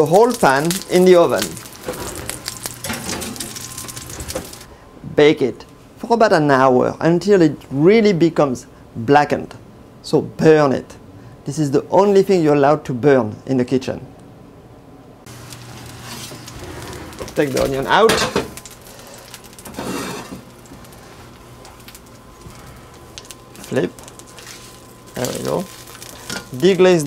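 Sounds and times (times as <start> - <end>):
onions sizzling in oil: 0.0 - 4.7, 15.3 - 27.0
oven humming and hissing: 0.0 - 27.0.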